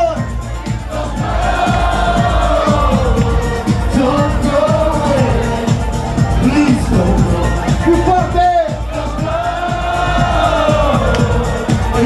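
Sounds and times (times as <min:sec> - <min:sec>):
faint crowd: 0:00.0 - 0:12.0
loud eurodance music: 0:00.0 - 0:12.0.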